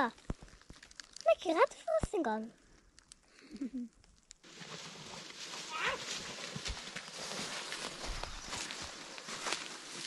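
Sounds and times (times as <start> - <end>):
footsteps crunching dry leaves: 4.4 - 10.0.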